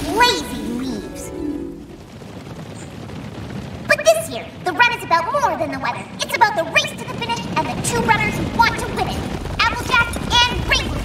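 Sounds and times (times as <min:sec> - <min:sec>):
many hooves galloping: 0:00.0 - 0:11.0.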